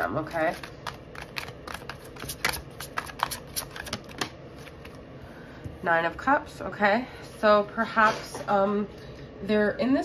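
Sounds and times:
cards being shuffled: 0.4 - 5.0.

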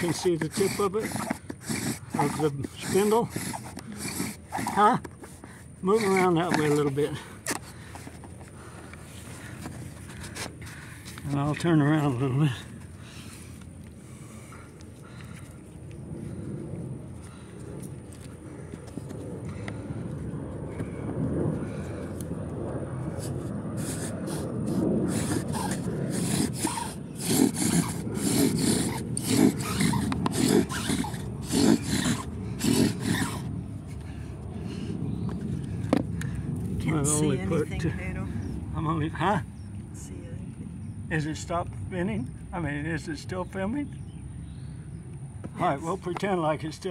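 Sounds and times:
wooden spindle grinding and squeaking: 0.0 - 8.4, 23.2 - 33.5.

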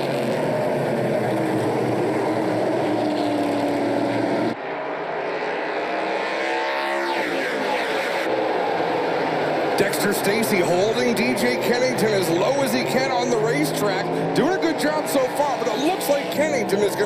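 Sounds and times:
racing car engines at full throttle: 0.0 - 17.0.

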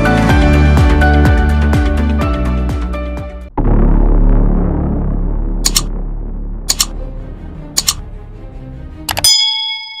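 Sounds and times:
low synth music: 0.0 - 10.0
quick double click: 5.7 - 5.9, 6.7 - 6.9, 7.8 - 8.0
bright bell ding: 9.1 - 10.0.

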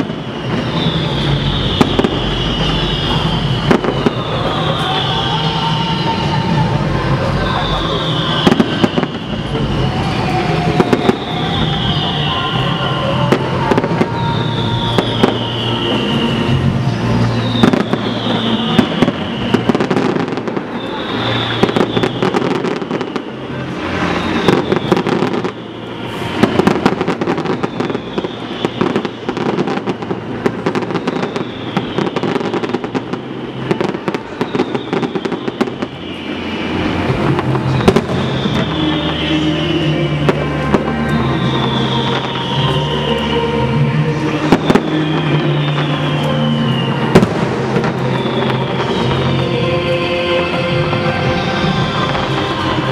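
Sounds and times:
fireworks bangs and crackling: 0.0 - 52.9.

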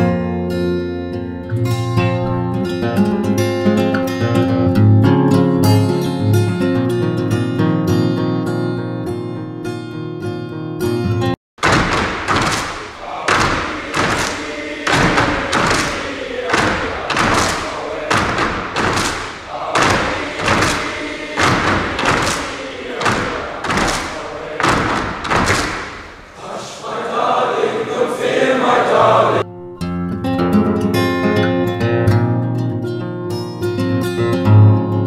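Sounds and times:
rhythmic group thuds: 11.6 - 29.4
boys chanting in unison: 12.4 - 29.4.

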